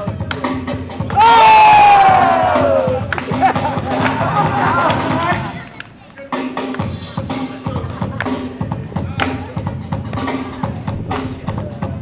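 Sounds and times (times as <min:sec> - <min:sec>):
dance music playing: 0:00.0 - 0:12.0
person shouting: 0:01.2 - 0:03.0.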